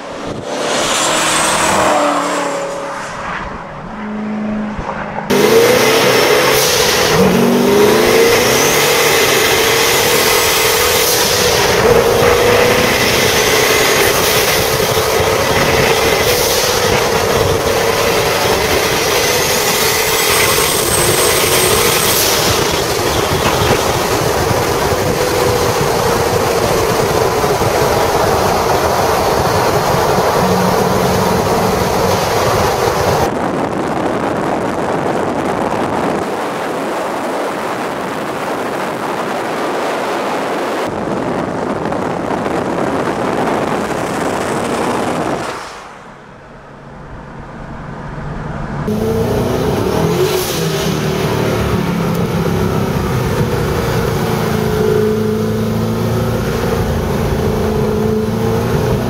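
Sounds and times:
car engine droning: 0.0s - 59.0s.

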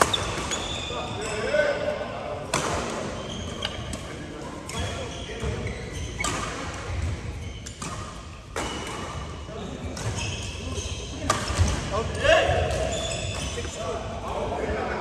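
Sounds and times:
racket hitting shuttlecock: 0.0s - 0.7s, 2.5s - 4.1s, 6.2s - 9.4s, 11.2s - 11.9s
shoes squeaking on court: 0.0s - 1.6s, 3.1s - 11.7s, 12.6s - 13.8s
players' voices: 0.2s - 7.2s, 9.4s - 15.0s.

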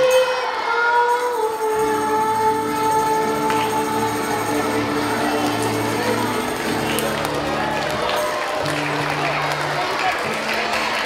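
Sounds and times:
acoustic guitar: 0.0s - 11.0s
children's choir singing: 0.0s - 11.0s.

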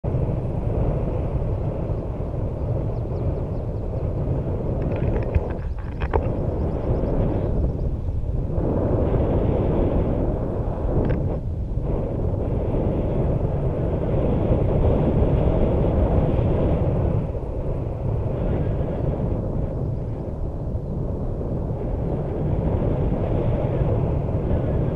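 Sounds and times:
wind rushing on microphone: 0.0s - 24.9s.

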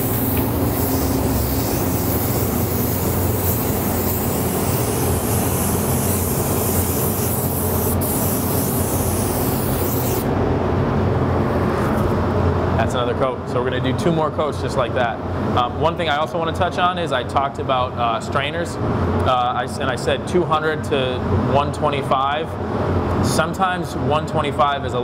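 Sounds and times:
spray gun hissing: 0.0s - 10.3s
steady low hum: 0.0s - 25.0s.

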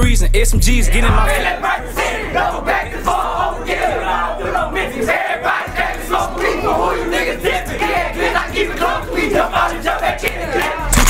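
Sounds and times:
men shouting and chanting: 0.0s - 11.0s
trap beat with deep bass: 0.0s - 11.0s.

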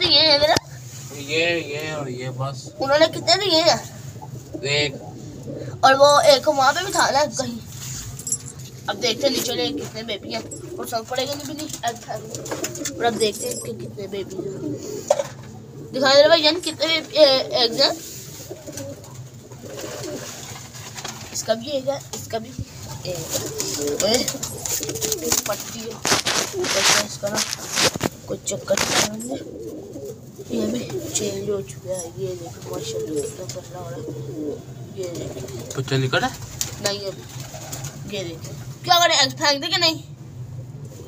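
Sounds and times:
pigeons cooing: 0.0s - 7.6s, 8.8s - 38.7s.

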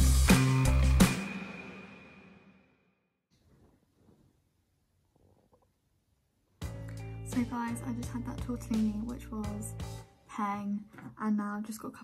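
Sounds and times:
background music: 0.0s - 2.6s, 6.6s - 10.7s.

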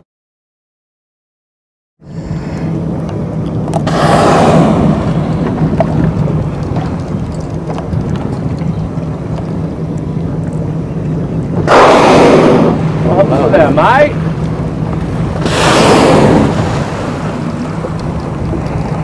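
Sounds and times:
whale blowing exhalations: 2.0s - 2.9s, 15.4s - 18.0s
boat engine idling: 2.0s - 19.0s.

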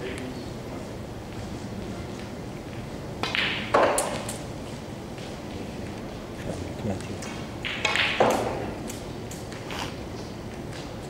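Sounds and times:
cue striking ball: 3.2s - 4.4s, 7.3s - 8.9s
snooker balls knocking: 3.2s - 4.4s, 7.2s - 9.7s.

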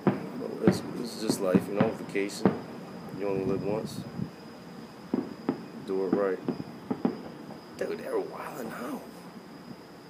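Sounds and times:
distant fireworks bangs: 0.0s - 3.8s, 5.0s - 9.0s.

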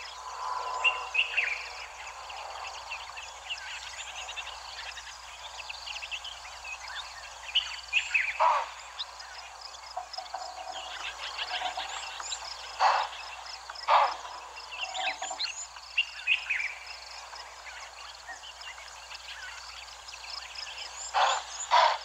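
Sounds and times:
fast regular pulsing call: 0.0s - 17.3s, 19.6s - 22.0s
birds chirping and calling: 0.0s - 22.0s
harsh bird calls: 0.0s - 22.0s.

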